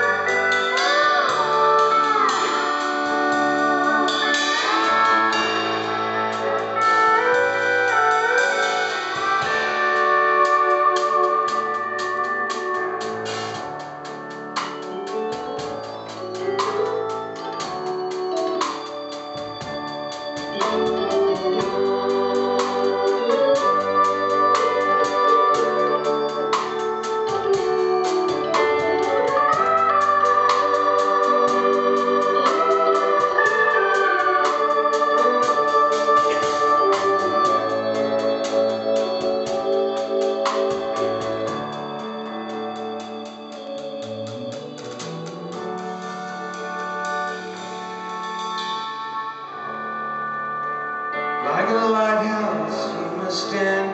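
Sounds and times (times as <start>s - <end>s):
country rock band playing: 0.0s - 53.9s
piano: 0.0s - 53.9s
wavering organ-like lead: 0.0s - 53.9s.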